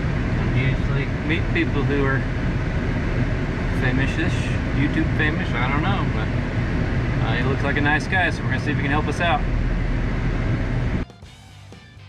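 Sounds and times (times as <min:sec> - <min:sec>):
pickup truck engine rumble: 0:00.0 - 0:11.7
background music with plucked rhythm: 0:11.0 - 0:12.0.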